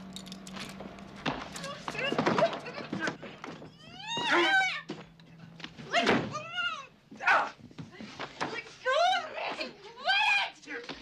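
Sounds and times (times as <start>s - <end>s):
woman screaming: 3.8s - 4.9s.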